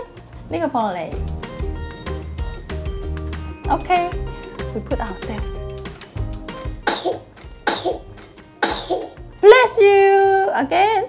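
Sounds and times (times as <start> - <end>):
baby sneezing: 6.8 - 9.2.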